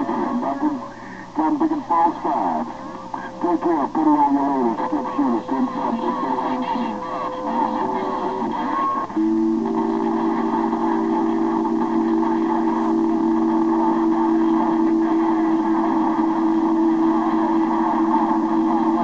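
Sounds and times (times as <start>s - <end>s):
radio band noise: 0.0s - 19.0s
two-pitch radio tone: 0.0s - 19.0s.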